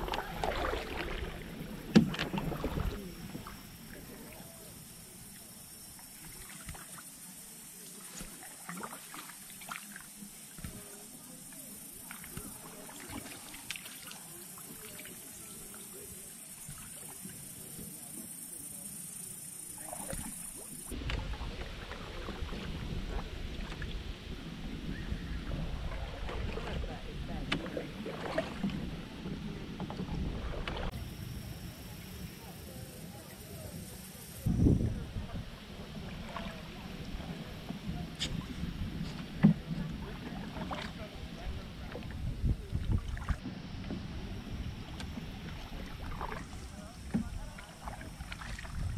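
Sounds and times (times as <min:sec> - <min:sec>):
paddle strokes in water: 0:00.0 - 0:48.9.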